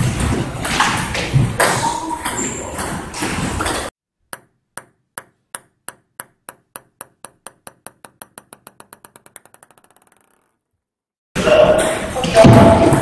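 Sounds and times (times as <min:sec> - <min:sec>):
table tennis ball bouncing: 0:04.2 - 0:10.9.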